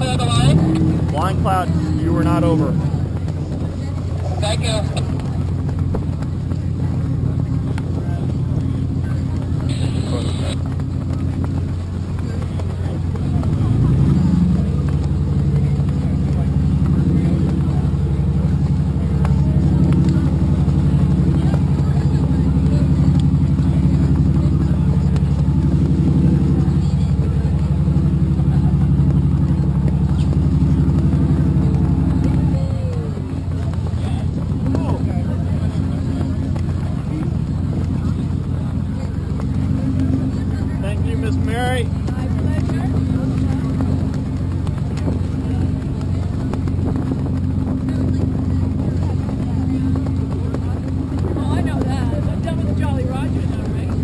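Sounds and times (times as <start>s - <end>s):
engine droning: 0.0s - 54.0s.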